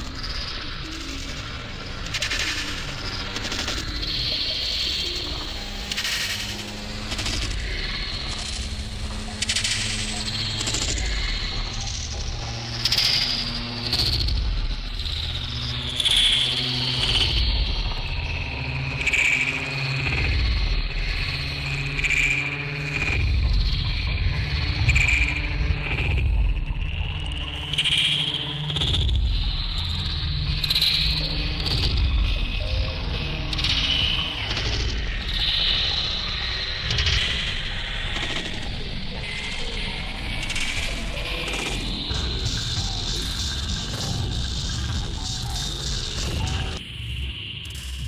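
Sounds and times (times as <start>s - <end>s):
heavy steady bass: 41.5s - 46.8s.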